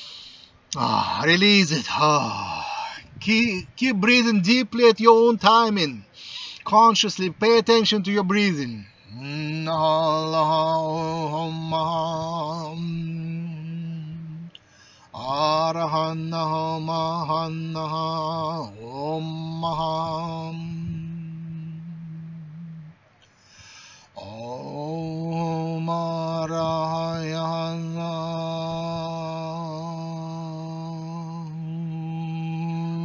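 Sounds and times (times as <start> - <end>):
man chanting long low notes: 0.8 - 6.0, 6.7 - 14.5, 24.2 - 33.0.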